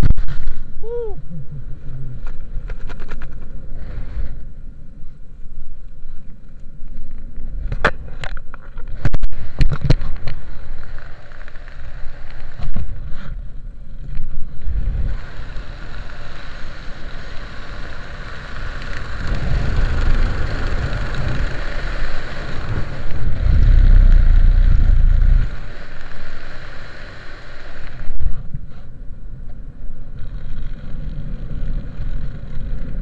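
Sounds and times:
wind rushing over microphone: 6.7s - 33.0s.

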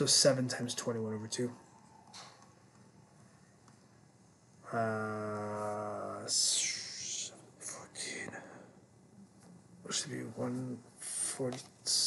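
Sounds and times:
man muttering in a whisper: 4.6s - 8.6s.

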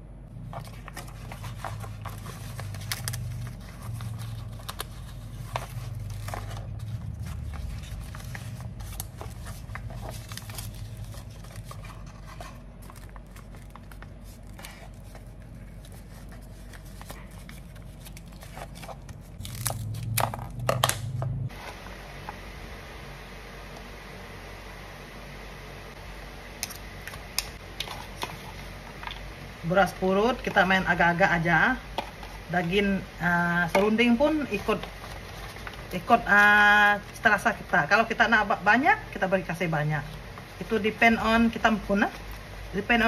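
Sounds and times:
wrappers crinkling and rustling: 0.4s - 21.6s, 31.4s - 37.6s.

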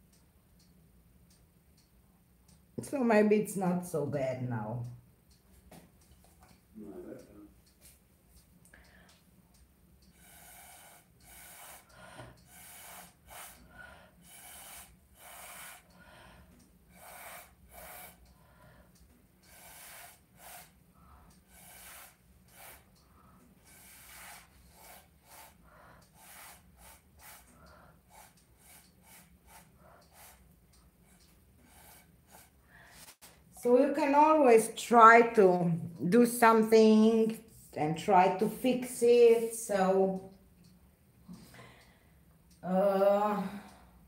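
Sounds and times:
breath puffs through a straw: 10.1s - 16.2s, 16.9s - 18.4s, 19.4s - 30.4s.

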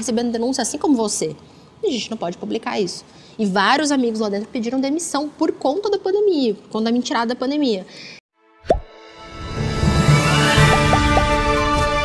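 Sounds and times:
outro music: 8.5s - 12.0s
short plop: 8.7s - 8.9s, 10.7s - 11.3s.

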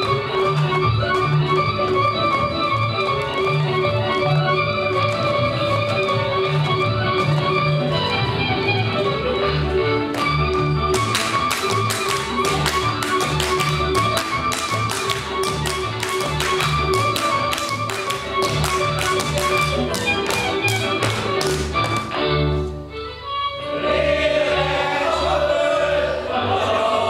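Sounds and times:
instrumental folk dance music: 0.0s - 26.8s
hand claps and slaps on boots: 10.0s - 22.2s.

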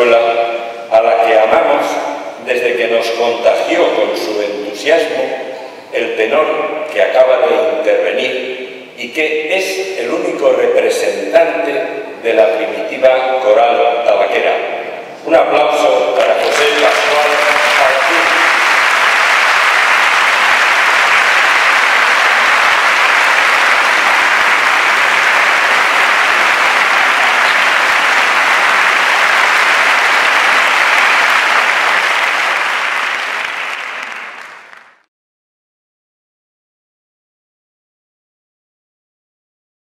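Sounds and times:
people applauding: 16.1s - 35.0s.

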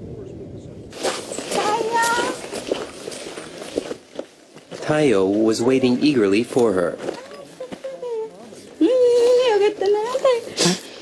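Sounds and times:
footsteps: 0.9s - 10.4s.

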